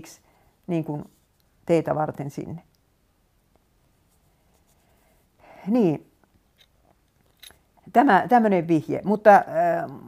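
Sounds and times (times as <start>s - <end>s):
woman speaking: 0.0s - 2.7s, 5.6s - 6.1s, 7.9s - 10.0s.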